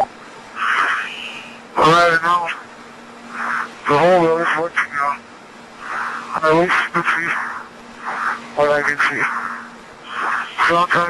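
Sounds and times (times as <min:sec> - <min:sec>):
faint hum: 0:00.0 - 0:11.0.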